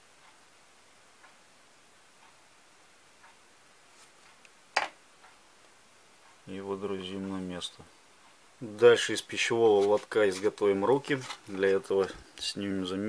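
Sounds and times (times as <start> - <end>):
faint ticks: 0.2 - 0.6, 1.2 - 1.5, 2.2 - 2.5, 3.2 - 3.4.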